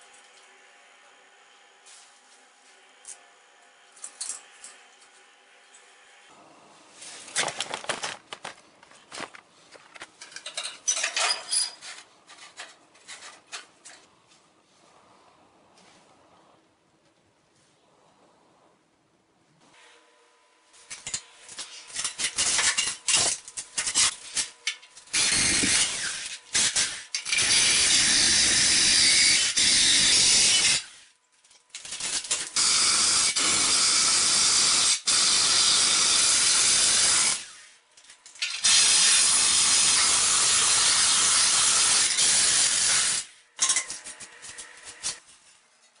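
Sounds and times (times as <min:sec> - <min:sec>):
drill grinding through tile: 0:25.1 - 0:31.0, 0:32.5 - 0:37.6, 0:38.6 - 0:43.3.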